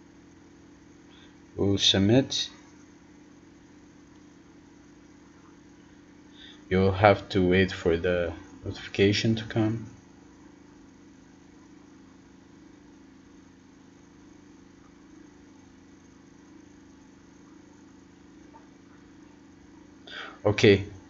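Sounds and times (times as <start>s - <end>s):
light hiss: 0.0s - 6.8s
faint low hum: 0.0s - 21.0s.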